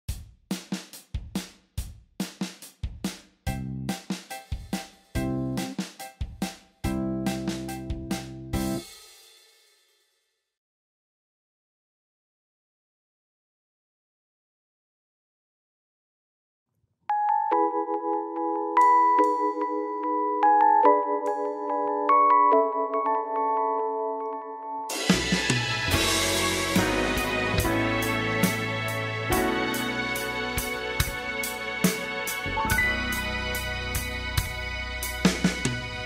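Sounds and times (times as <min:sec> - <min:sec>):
drum kit beat: 0:00.0 - 0:09.6, 0:24.9 - 0:36.0
instrumental music intro: 0:00.1 - 0:09.9, 0:17.1 - 0:36.0.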